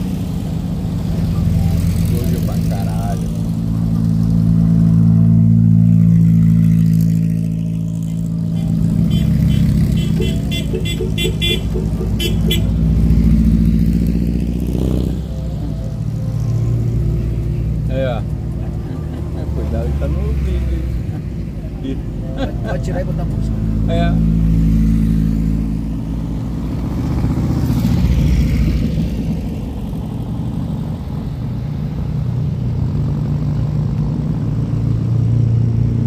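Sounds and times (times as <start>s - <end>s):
dune buggy engines passing: 0.0s - 36.0s
short horn beeps: 8.6s - 12.7s.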